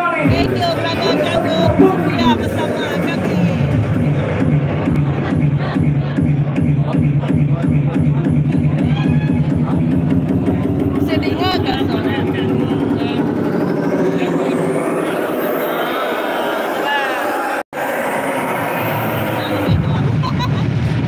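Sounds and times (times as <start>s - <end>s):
electronic dance music: 0.0s - 21.0s
rising synth sweep: 8.7s - 21.0s.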